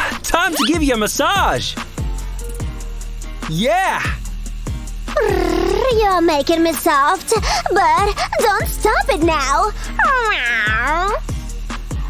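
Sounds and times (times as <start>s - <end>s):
background music: 0.0s - 12.0s
cat meowing: 10.0s - 11.1s.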